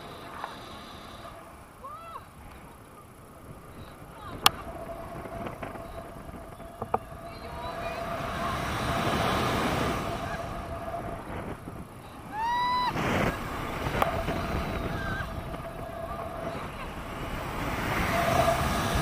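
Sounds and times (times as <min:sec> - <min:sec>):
wind rushing over microphone: 0:00.0 - 0:19.0
high-pitched vocal whoop: 0:12.3 - 0:13.0.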